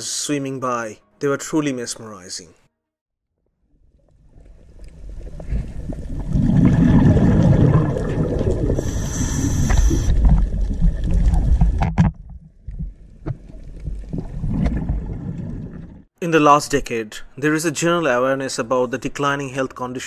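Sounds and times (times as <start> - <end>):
underwater water rumble: 3.7 - 16.1
brief hiss: 8.8 - 10.2.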